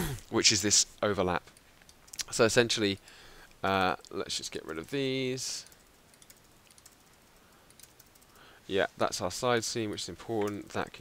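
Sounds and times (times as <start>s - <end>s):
keyboard and mouse clicks: 5.6s - 8.3s.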